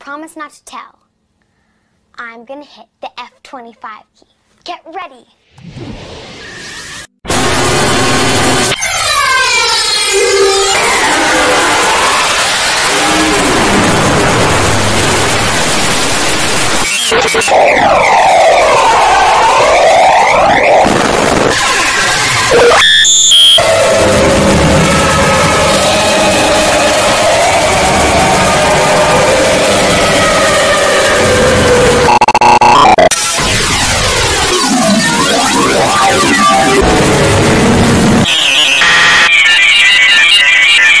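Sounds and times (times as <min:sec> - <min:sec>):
distorted electronic music: 0:07.0 - 0:41.0
harsh buzzing: 0:31.8 - 0:33.1.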